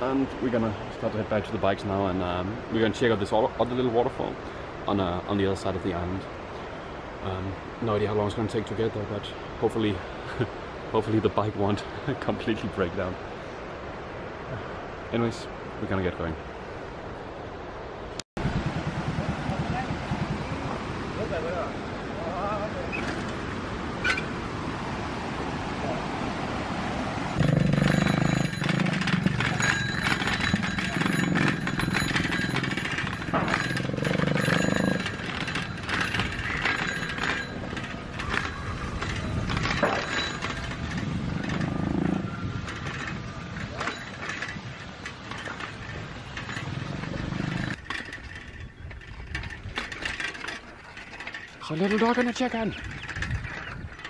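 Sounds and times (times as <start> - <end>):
wind on microphone: 18.4 - 21.9, 23.9 - 50.2, 52.7 - 54.0
bicycles rattling on dirt: 27.4 - 54.0.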